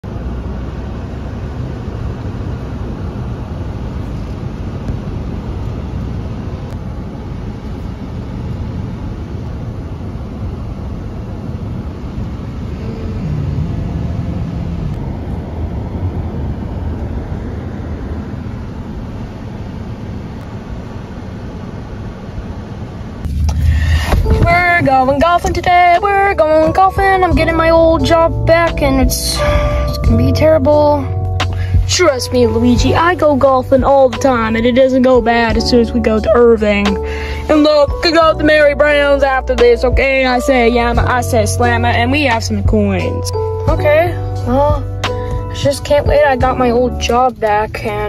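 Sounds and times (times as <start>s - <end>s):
car interior road and engine rumble: 0.0s - 48.0s.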